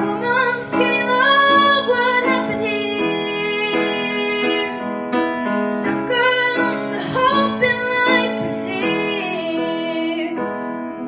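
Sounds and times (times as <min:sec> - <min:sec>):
girl singing into a microphone: 0:00.0 - 0:10.9
grand piano: 0:00.0 - 0:11.0.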